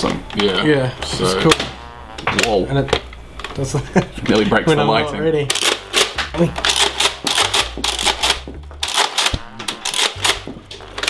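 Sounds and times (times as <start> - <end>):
plastic discs striking surfaces: 0.0 - 4.6, 5.4 - 11.0.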